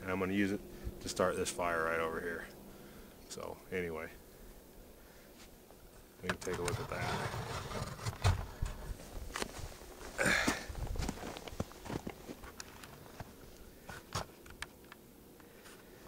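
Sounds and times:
footsteps crunching in snow: 6.8 - 14.2.

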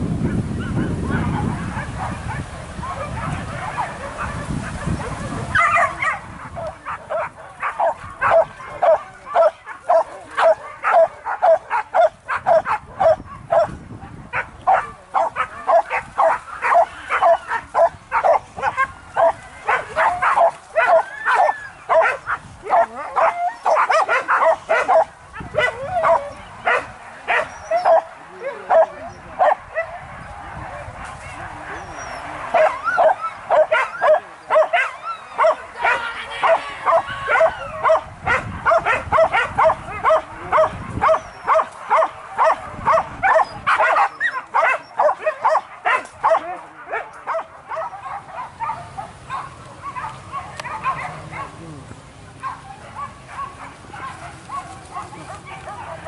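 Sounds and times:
dogs barking and yelping: 0.2 - 51.8, 52.4 - 56.0.

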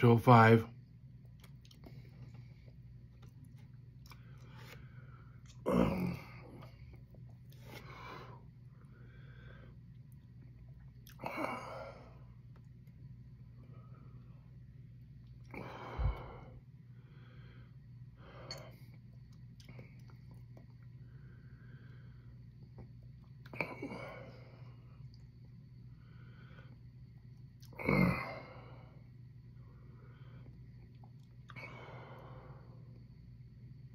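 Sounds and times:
man breathing sharply: 15.5 - 18.7.

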